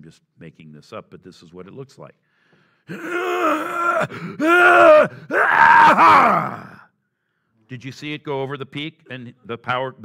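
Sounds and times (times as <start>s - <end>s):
man groaning loudly: 2.9s - 6.8s.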